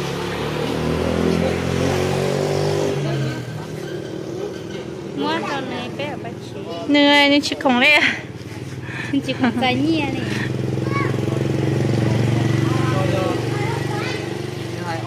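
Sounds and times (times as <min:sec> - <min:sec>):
engine running: 0:00.0 - 0:15.0.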